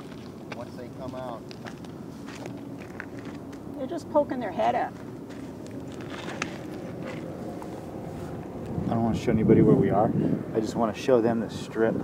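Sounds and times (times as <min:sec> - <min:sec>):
distant traffic rumble: 0:00.0 - 0:12.0
wind on microphone: 0:06.2 - 0:12.0.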